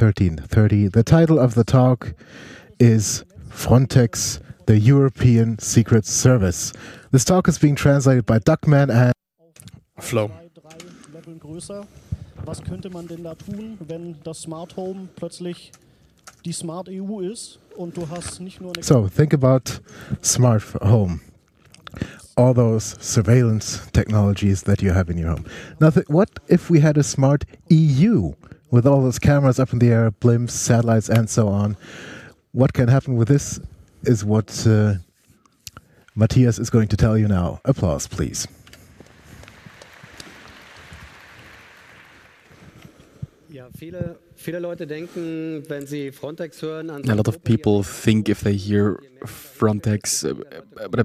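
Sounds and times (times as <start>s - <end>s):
man speaking: 0.0s - 9.2s, 9.8s - 15.8s, 16.4s - 31.9s, 32.5s - 35.1s, 36.1s - 38.7s, 43.5s - 51.0s
audience applauding: 38.9s - 43.2s.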